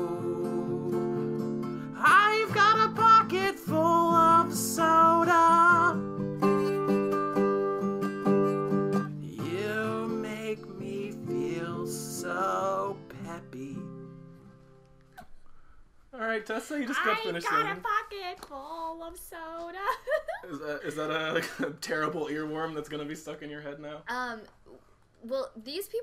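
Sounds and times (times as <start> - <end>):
person singing: 0.0 - 7.3, 8.3 - 13.9
strummed acoustic guitar: 0.0 - 15.0.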